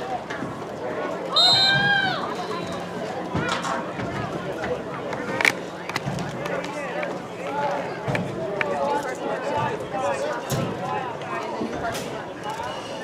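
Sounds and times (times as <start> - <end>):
spectators chatting and calling out: 0.0 - 13.0.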